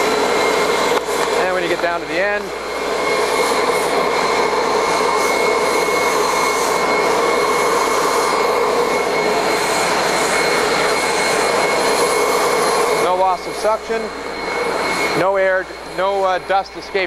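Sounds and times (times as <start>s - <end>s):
air-powered vacuum running: 0.0s - 17.0s.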